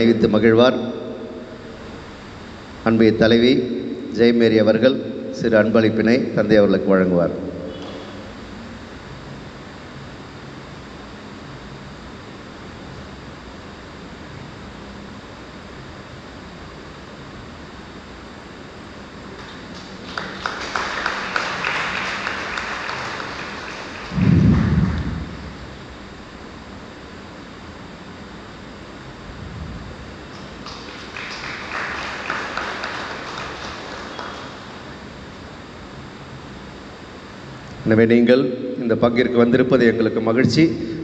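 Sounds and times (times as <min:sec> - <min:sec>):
room hum: 0:00.0 - 0:41.0
people clapping: 0:07.7 - 0:08.2, 0:19.3 - 0:25.4, 0:30.3 - 0:35.0
loud low thump: 0:24.1 - 0:25.8.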